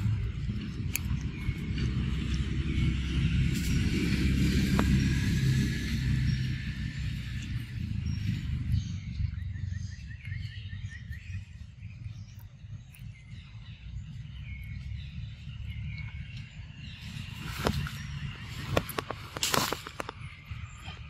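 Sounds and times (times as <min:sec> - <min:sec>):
birds calling: 0:00.0 - 0:21.0
low rumble: 0:00.0 - 0:21.0.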